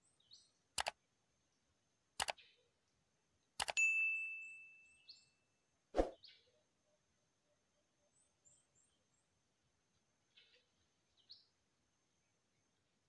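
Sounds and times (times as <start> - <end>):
ringing ding: 3.8 - 5.0.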